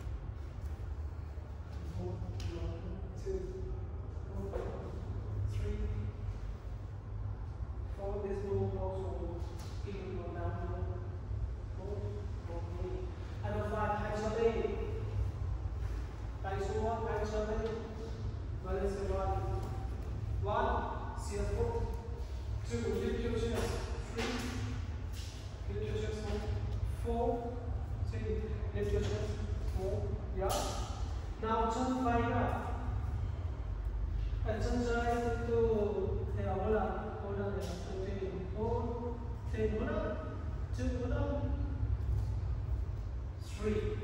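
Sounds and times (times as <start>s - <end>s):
low hum: 0.0s - 44.0s
man speaking: 1.7s - 6.5s, 7.9s - 11.1s, 11.7s - 15.4s, 16.3s - 33.3s, 34.2s - 41.9s, 43.4s - 44.0s
person talking: 16.4s - 33.0s.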